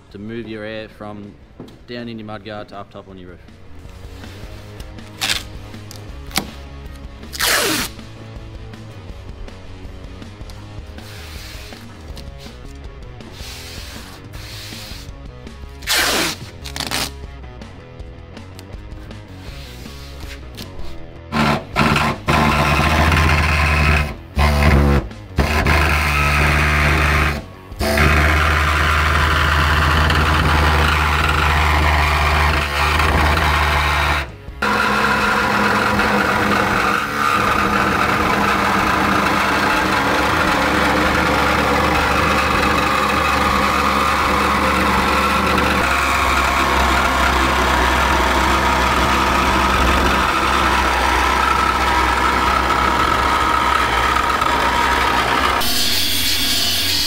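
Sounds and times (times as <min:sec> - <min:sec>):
air-powered cutting tool: 0:07.3 - 0:08.0, 0:13.3 - 0:15.1, 0:15.8 - 0:17.1, 0:21.3 - 0:57.0.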